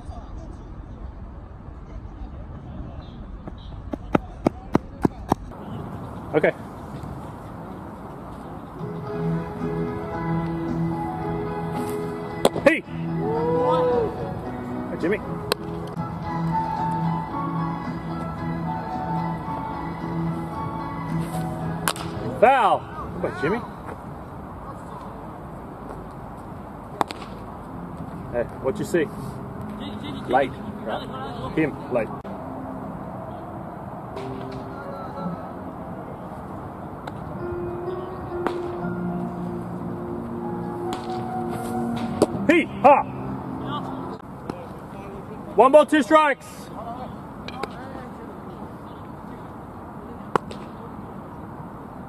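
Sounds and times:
faint distant voices: 0.0 - 9.4, 21.6 - 39.6, 42.4 - 52.0
steady background noise: 0.0 - 52.0
baseball bat crack: 11.7 - 12.7, 15.4 - 16.0, 21.2 - 22.4, 26.9 - 27.5, 34.2 - 34.7, 38.4 - 38.9, 40.8 - 42.5, 47.4 - 47.8, 50.3 - 50.8
sharp smacks: 21.8 - 22.2, 27.0 - 27.4, 50.3 - 50.8.

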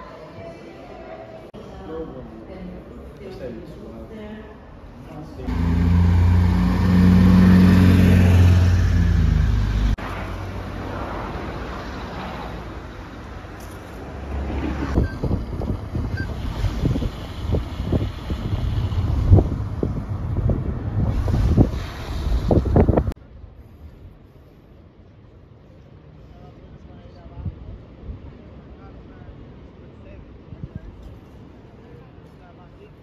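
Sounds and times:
road noise: 0.1 - 33.0
car engine and road hum: 5.4 - 23.2
wind buffeting microphone: 14.7 - 23.2.

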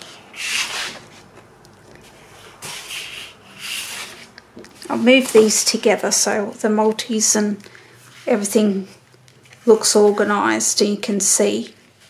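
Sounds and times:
paper sheets rustling: 0.0 - 5.8.

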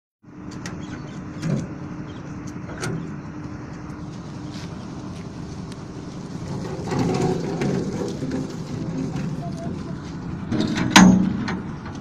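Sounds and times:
steady low hum: 0.2 - 12.0
cart rumbling over concrete: 0.5 - 12.0
metallic clanks: 6.4 - 12.0.

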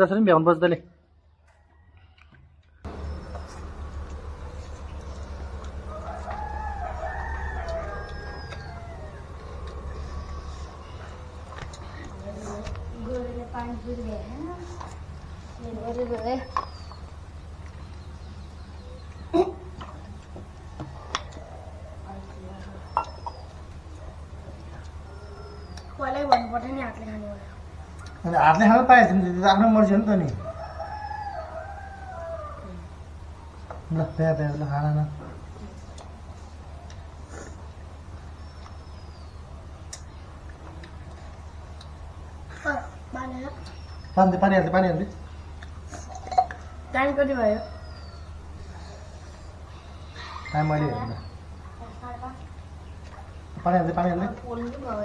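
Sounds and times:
rooster crowing: 1.5 - 13.9, 25.0 - 25.8, 30.0 - 33.0, 46.5 - 50.5
steady low hum: 2.8 - 55.0.

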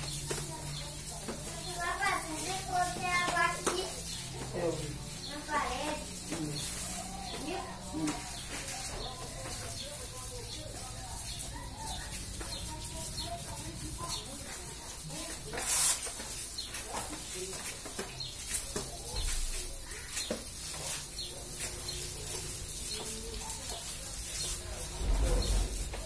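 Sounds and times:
birds chirping: 0.0 - 26.0
squeegee swishing water on tiles: 0.0 - 26.0
low rumble: 24.8 - 26.0.

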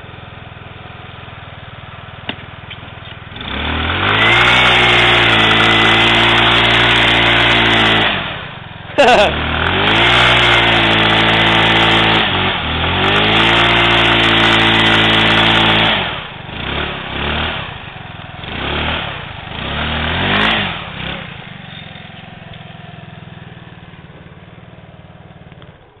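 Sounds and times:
scooter engine revving: 0.0 - 26.0
wheel spinning on grass: 2.2 - 26.0.

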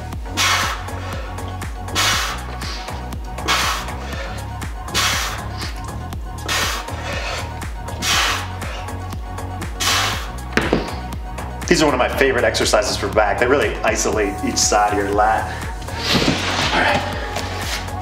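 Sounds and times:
background music with bass line: 0.0 - 18.0.

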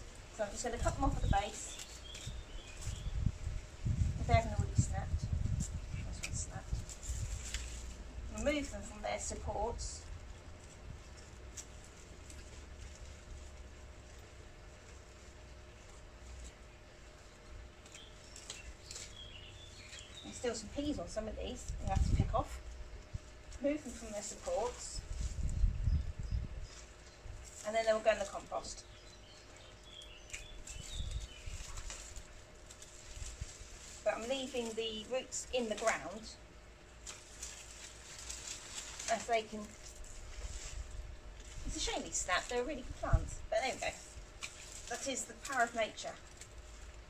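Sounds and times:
dry plants rustling: 0.0 - 47.0
low steady rumble: 0.0 - 47.0.

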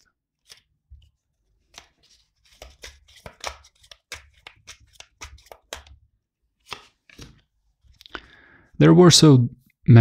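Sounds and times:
cards being shuffled: 0.3 - 8.0.

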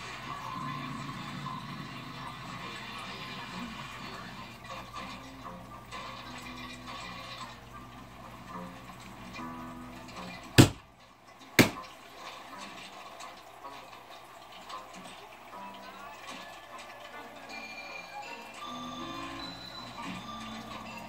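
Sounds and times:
faint television music: 0.0 - 21.0
sharp knocks: 10.6 - 10.8, 11.6 - 11.8.

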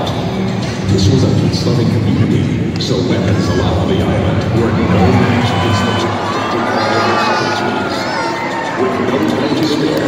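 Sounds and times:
crowd cheering: 3.2 - 10.0
children shouting and screaming: 5.0 - 8.8.

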